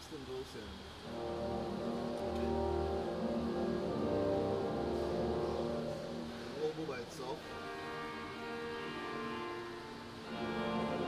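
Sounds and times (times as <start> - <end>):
organ playing sustained chords: 1.0 - 11.0.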